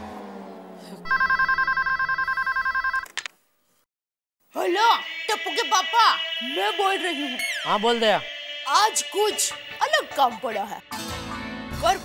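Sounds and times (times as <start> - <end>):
desk telephone ringing: 1.1 - 3.1.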